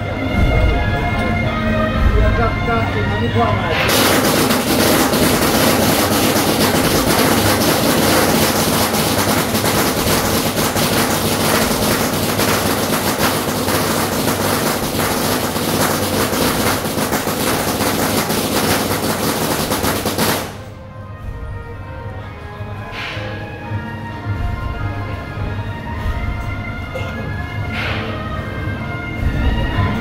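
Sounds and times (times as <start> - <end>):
dense clattering percussion: 3.9 - 20.8.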